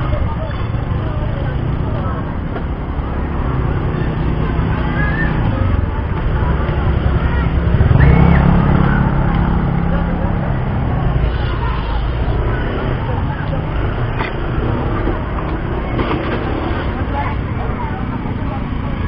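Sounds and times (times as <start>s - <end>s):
indistinct voices chattering: 0.0s - 19.0s
loud low rumble: 5.5s - 18.3s.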